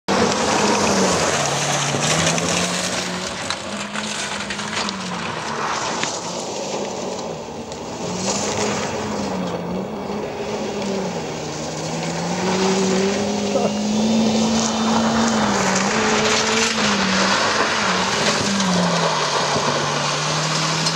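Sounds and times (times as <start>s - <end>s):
car engine revving: 0.1s - 20.9s
tyres spraying gravel: 0.1s - 20.9s.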